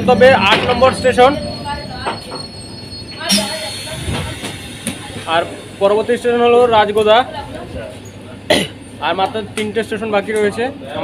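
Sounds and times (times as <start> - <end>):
electric train rattling and rumbling: 0.0 - 10.9.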